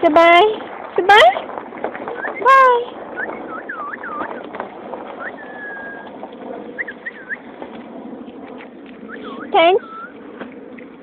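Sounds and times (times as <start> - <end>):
outdoor background noise: 0.0 - 11.0
birds chirping: 2.0 - 11.0
bird whistle: 3.2 - 4.5, 5.2 - 6.1, 6.8 - 7.5, 9.1 - 10.2.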